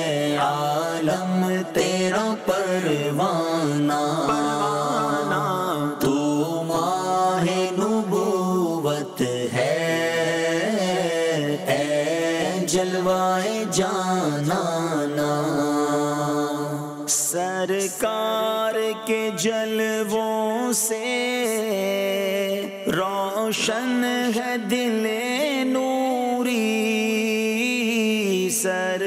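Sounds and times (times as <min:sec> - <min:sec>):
man singing a long note: 0:00.0 - 0:12.4
solo voice singing devotional song: 0:00.0 - 0:29.0.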